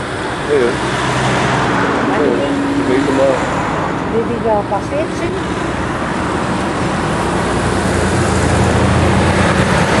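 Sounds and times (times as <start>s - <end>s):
low engine drone: 0.0s - 10.0s
trucks passing: 0.0s - 10.0s.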